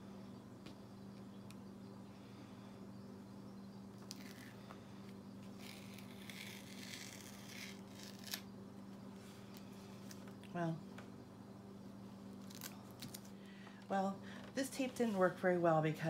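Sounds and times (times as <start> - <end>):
tape peeling off paper: 4.0 - 4.6, 5.4 - 8.5, 12.4 - 13.3.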